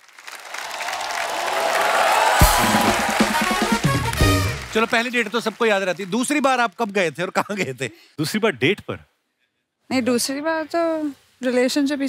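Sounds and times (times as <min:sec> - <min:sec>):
audience applause: 0:00.0 - 0:07.4
music sting with drum hit: 0:02.4 - 0:04.7.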